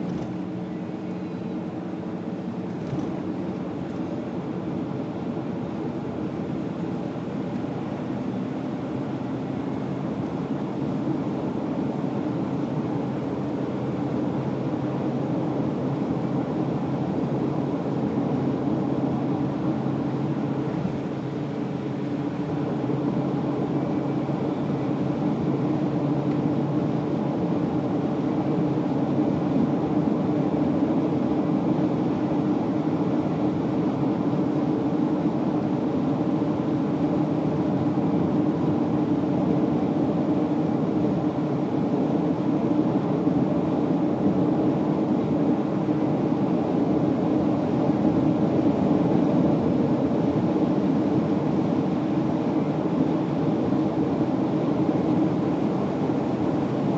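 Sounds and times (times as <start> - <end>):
car engine drone and road noise: 0.0 - 56.9.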